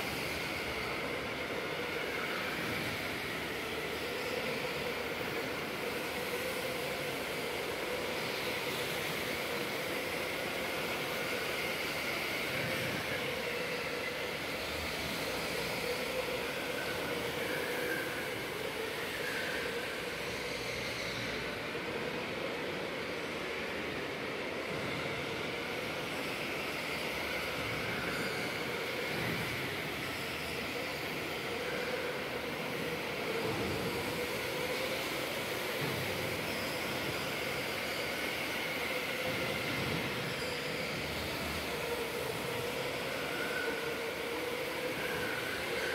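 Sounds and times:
electric kart motors whining: 0.0 - 45.9.

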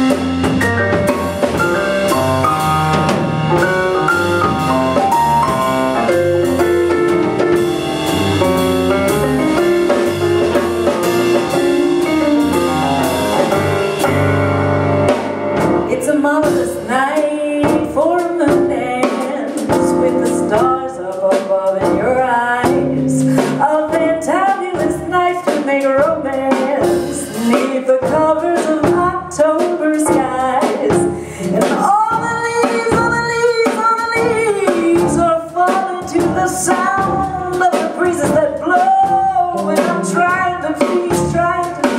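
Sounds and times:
keyboard: 0.0 - 15.9
electric bass: 0.0 - 16.0, 37.0 - 37.5
drum kit: 0.0 - 41.9
woman singing: 15.9 - 41.9.

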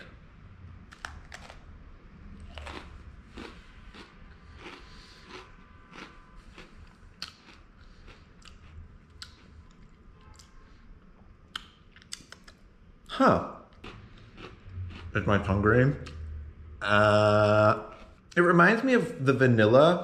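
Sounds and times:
cookie crunching while chewing: 0.9 - 1.7, 2.4 - 10.6, 13.7 - 15.2.

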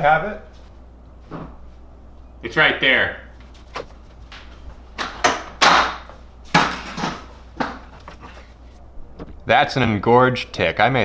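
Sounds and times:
low steady hum: 0.0 - 11.0
footsteps: 3.4 - 5.2
objects knocking and clattering: 3.7 - 8.5.

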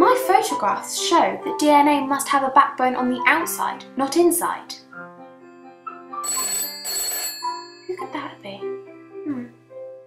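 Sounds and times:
quiet background music: 0.0 - 10.0
telephone bell ringing: 6.2 - 8.0.

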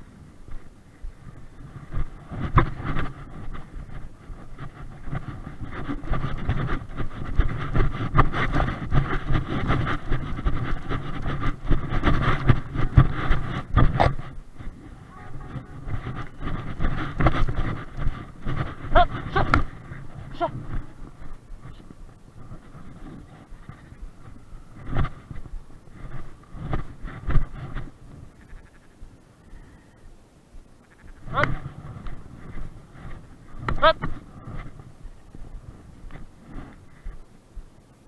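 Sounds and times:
rustling and knocks of walking: 0.0 - 38.0
wind rumbling on microphone: 0.0 - 38.0.

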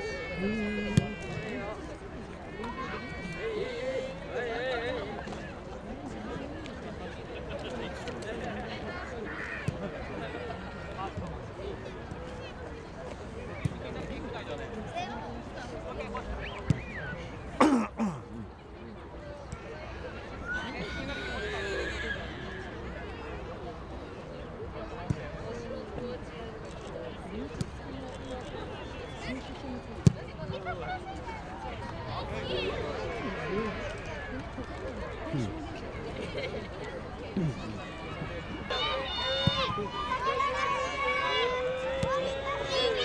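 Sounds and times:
people's voices: 0.0 - 43.0
spectators talking: 0.0 - 43.0.

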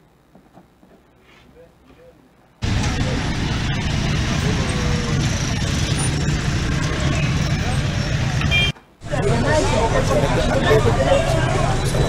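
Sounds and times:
cars and motorcycles running: 2.6 - 12.0.

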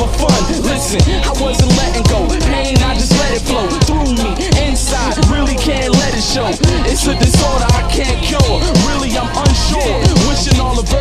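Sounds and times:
deep kick drum: 0.0 - 6.0, 6.6 - 11.0
rapping over a beat: 0.0 - 11.0.

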